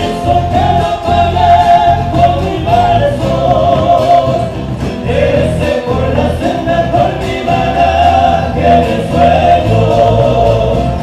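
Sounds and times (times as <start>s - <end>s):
acoustic guitars: 0.0s - 11.0s
drums: 0.0s - 11.0s
voices singing together: 0.0s - 11.0s.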